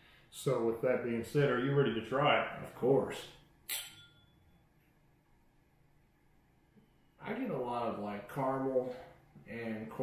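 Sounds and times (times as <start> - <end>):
glass ringing: 3.6 - 4.6.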